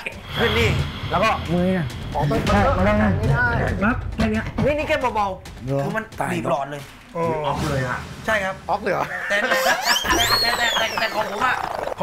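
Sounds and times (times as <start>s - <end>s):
men laughing and exclaiming: 8.8s - 11.8s.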